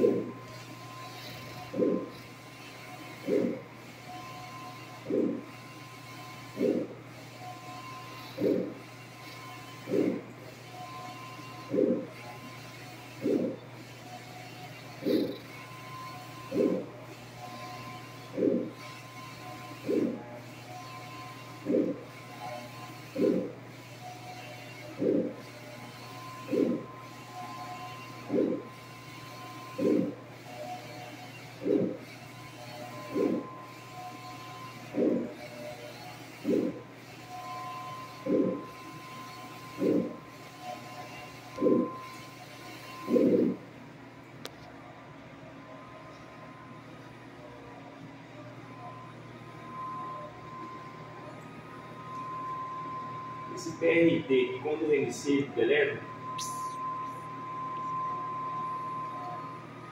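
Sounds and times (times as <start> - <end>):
printer humming: 0.0 - 59.9.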